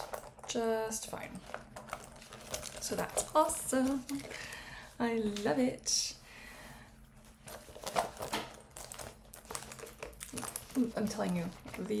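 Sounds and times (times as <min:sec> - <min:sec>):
handbag rustling and clicking: 0:00.0 - 0:04.4, 0:07.4 - 0:12.0.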